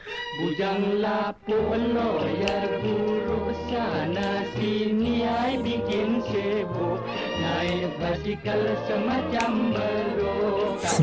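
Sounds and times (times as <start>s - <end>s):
instrumental accompaniment: 0.0s - 11.0s.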